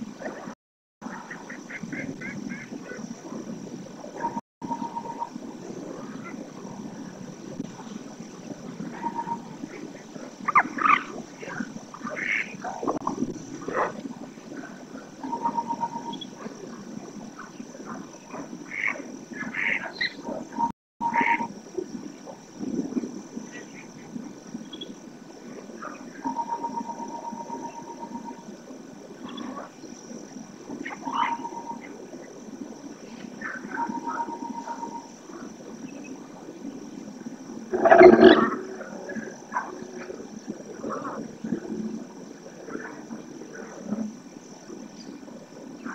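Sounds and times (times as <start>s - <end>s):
wetland ambience: 0.0s - 45.9s.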